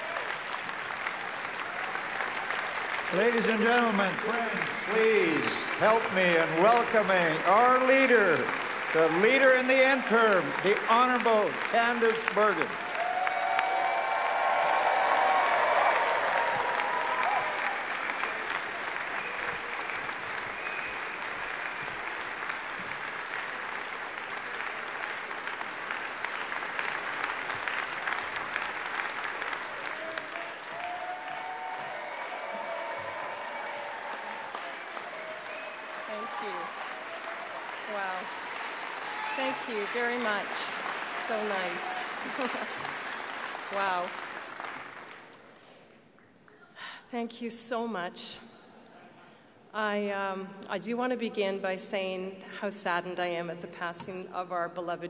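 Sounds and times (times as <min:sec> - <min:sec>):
crowd applauding: 0:00.0 - 0:46.6.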